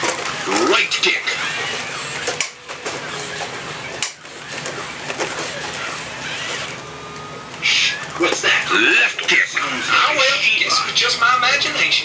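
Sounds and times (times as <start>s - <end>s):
gear motors whirring: 0.0s - 12.0s.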